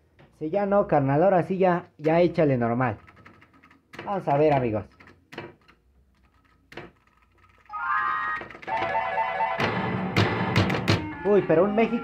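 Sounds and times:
sharp clattering knocks: 0:09.6 - 0:11.1.

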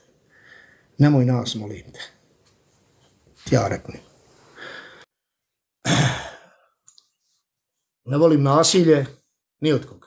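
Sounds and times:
man sighing: 0:05.8 - 0:06.7.

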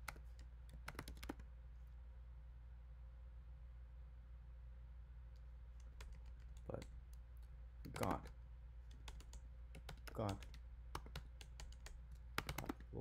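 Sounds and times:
keyboard key clicks: 0:08.9 - 0:12.9.

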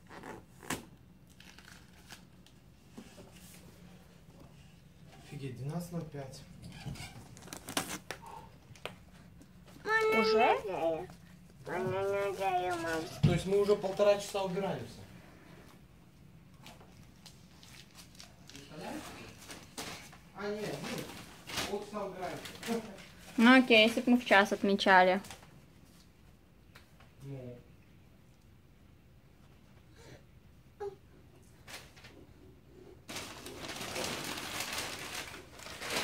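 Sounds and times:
small child cooing: 0:09.8 - 0:11.1, 0:11.7 - 0:13.2, 0:30.8 - 0:31.0
tissue paper rustling: 0:16.9 - 0:24.3, 0:33.1 - 0:36.0
paper gift bag handled: 0:17.0 - 0:24.0, 0:33.1 - 0:36.0.

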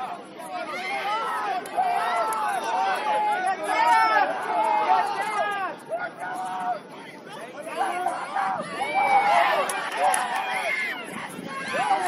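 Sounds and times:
people shouting and calling out: 0:00.0 - 0:12.0.

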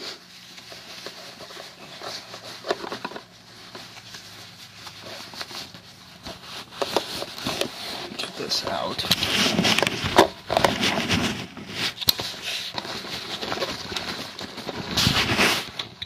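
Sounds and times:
cloth bag rustling and scraping: 0:00.0 - 0:15.8.

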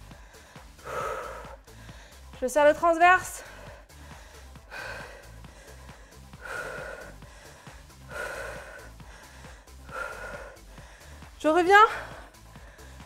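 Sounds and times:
woman breathing with effort: 0:00.0 - 0:02.4, 0:03.3 - 0:13.0
background music with a beat: 0:00.0 - 0:02.5, 0:03.3 - 0:13.0.

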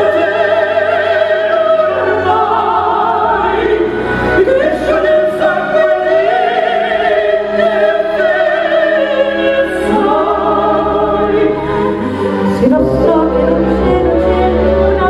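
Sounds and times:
soprano singing: 0:00.0 - 0:15.0
tenor singing: 0:00.0 - 0:15.0.

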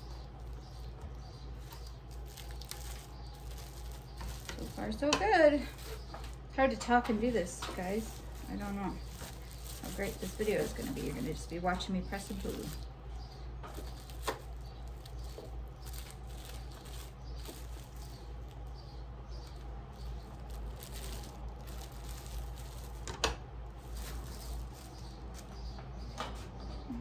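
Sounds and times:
plastic wrap rustling: 0:00.0 - 0:25.6
steady low hum: 0:00.0 - 0:27.0.

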